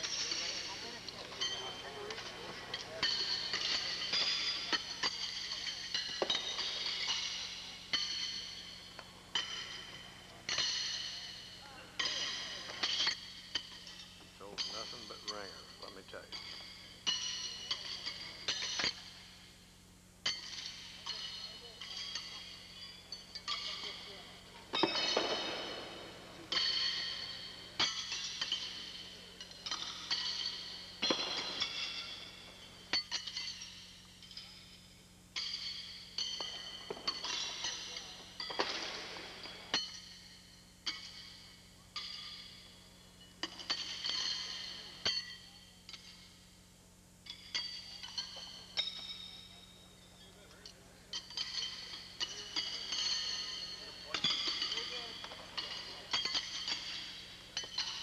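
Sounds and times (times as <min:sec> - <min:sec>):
horseshoes clanging on steel stakes: 0:00.0 - 0:19.3, 0:20.2 - 0:34.8, 0:35.4 - 0:46.4, 0:47.2 - 0:58.0.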